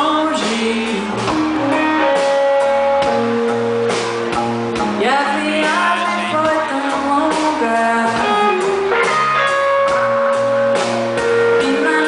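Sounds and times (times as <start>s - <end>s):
live band with guitar: 0.0s - 12.0s.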